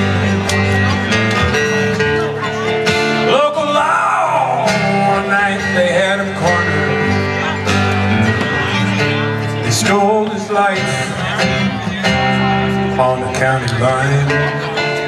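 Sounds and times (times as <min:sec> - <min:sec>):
bending lead guitar line: 0:00.0 - 0:15.0
country band playing: 0:00.0 - 0:15.0.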